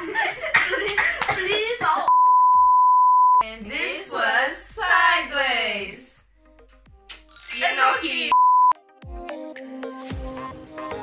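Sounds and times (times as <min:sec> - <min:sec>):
censor bleep: 0:02.1 - 0:03.4, 0:08.3 - 0:08.8
voice: 0:03.4 - 0:06.2, 0:07.5 - 0:08.4.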